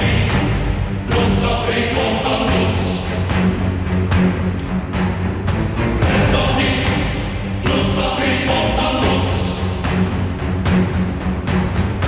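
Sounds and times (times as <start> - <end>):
choir-like singing: 0.0 - 10.6
steady low bass: 0.0 - 12.0.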